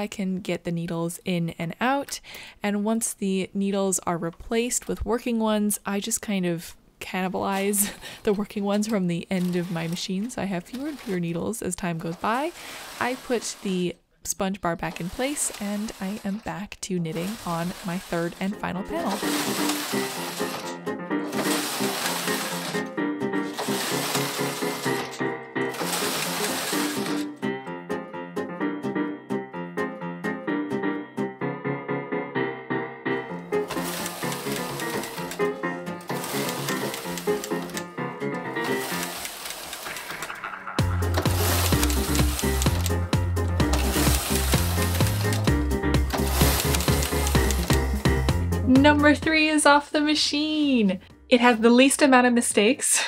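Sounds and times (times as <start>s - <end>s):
knitting machine carriage rushing: 7.5s - 14.0s, 14.6s - 27.5s, 33.4s - 48.4s
background music: 17.0s - 53.0s
background music with bass line: 40.2s - 49.5s.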